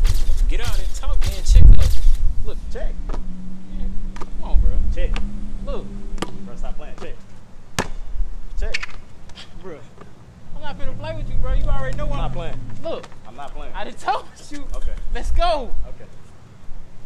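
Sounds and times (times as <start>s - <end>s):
basketball bouncing: 7.8s - 8.0s.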